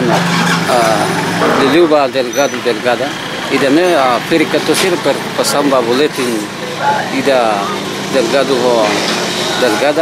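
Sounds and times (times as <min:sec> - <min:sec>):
man talking: 0:00.7 - 0:09.0, 0:09.6 - 0:10.0.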